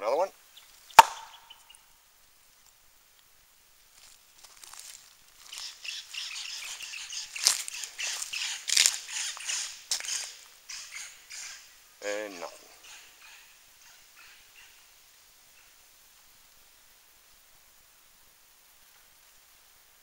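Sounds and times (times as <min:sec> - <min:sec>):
birds chirping: 0:00.0 - 0:01.9, 0:05.4 - 0:14.8
wood striking tree trunk: 0:00.9 - 0:01.7.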